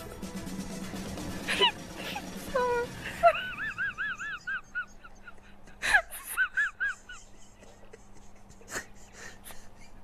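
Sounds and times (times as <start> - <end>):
woman laughing high-pitched: 3.0 - 10.0.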